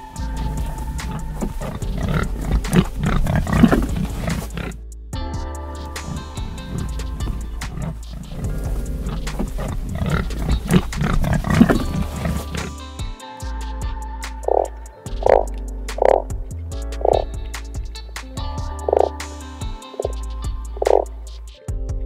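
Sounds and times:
pig calls: 0.0 - 4.8, 6.0 - 12.8
background music: 0.0 - 22.0.

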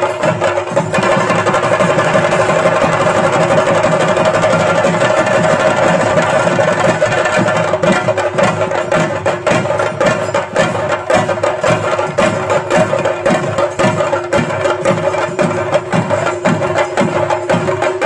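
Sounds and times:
drums in fast rhythm: 0.0 - 18.0.

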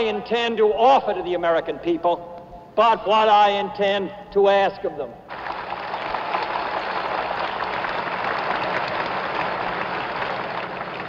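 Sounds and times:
large crowd applauding: 5.3 - 11.0.

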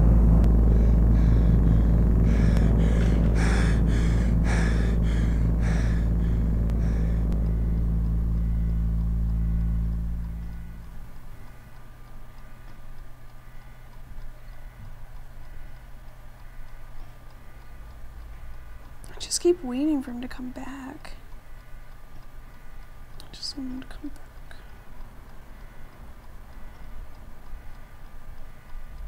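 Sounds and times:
runner's rhythmic strokes: 0.0 - 19.1
low rumbling drone: 0.0 - 20.3
faint hum: 0.0 - 29.0.

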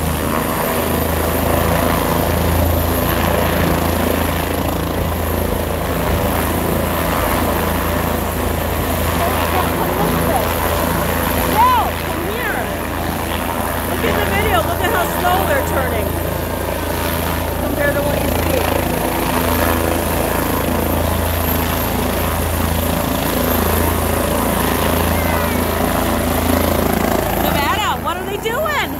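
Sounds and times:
helicopter rotor drone: 0.0 - 28.9.

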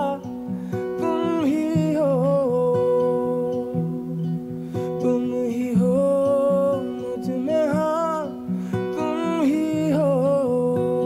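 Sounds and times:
guitar accompaniment: 0.0 - 11.0.

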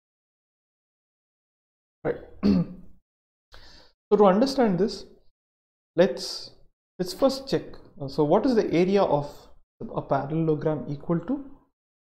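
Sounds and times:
man clearing his throat: 2.1 - 2.9.

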